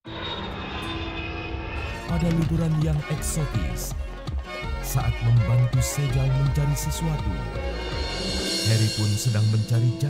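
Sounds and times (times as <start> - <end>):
aircraft engine drone: 0.0 - 10.0
faint high whine: 0.1 - 2.5.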